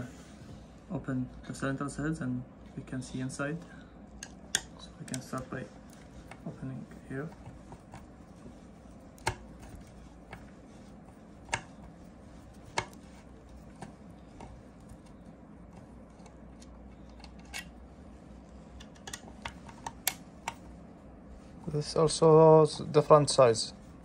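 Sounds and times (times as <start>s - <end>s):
low room hum: 0.0s - 24.0s.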